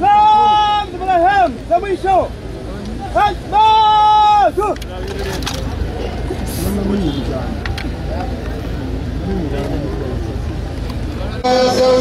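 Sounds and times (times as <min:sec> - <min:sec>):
crowd murmuring and talking: 0:00.0 - 0:12.0
loud held voice: 0:11.4 - 0:12.0.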